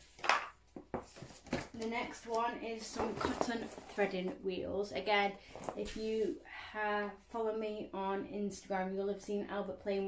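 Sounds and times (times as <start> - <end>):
toy boxes rustling: 0.0 - 4.4
woman speaking: 1.7 - 10.0.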